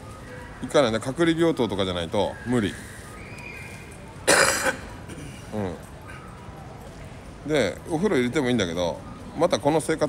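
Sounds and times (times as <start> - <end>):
man coughing: 4.3 - 5.4.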